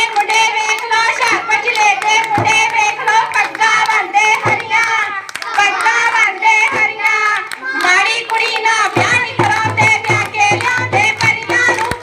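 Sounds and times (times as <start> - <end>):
girls singing folk song: 0.0 - 12.0
hand claps: 0.0 - 12.0.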